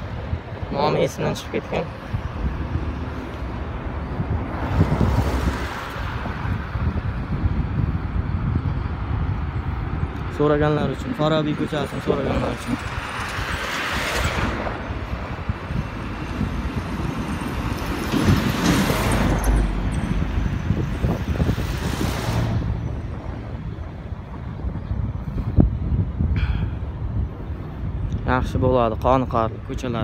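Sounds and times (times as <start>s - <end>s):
cars driving past: 0.0s - 29.4s
low traffic rumble: 0.0s - 30.0s.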